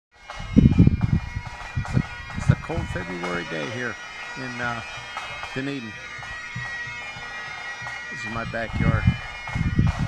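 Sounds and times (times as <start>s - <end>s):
faint bagpipes playing: 0.2s - 10.0s
thumps on microphone: 8.8s - 10.0s.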